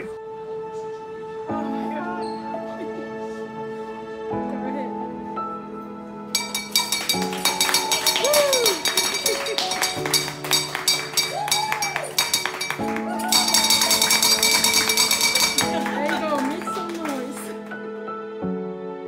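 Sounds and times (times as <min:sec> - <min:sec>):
background music with sustained chords: 0:00.0 - 0:19.0
hand bell rung rapidly: 0:06.4 - 0:16.1
people cheering: 0:06.8 - 0:17.7.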